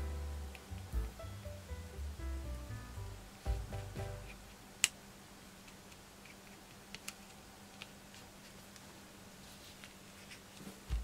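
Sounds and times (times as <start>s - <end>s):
soft guitar music: 0.0s - 4.3s.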